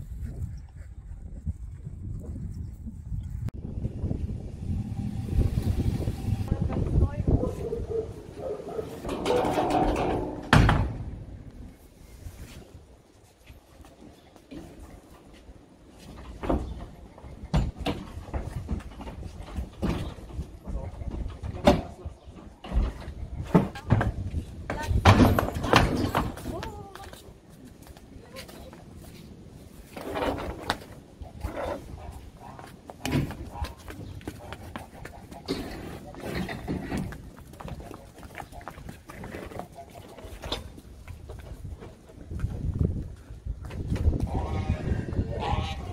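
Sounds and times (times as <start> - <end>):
low rumbling: 0.0 - 12.2
hollow thump in trailer: 9.0 - 11.5
cattle hooves on wet brick: 32.6 - 44.3.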